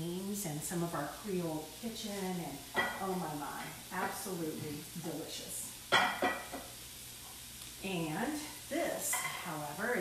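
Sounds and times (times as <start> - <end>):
vegetables sizzling in oil: 0.0 - 10.0.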